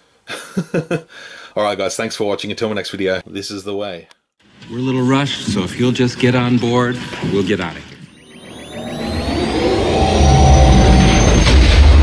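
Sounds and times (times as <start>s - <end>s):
whistling whines rising in pitch: 8.1s - 12.0s
low rumble: 8.3s - 12.0s.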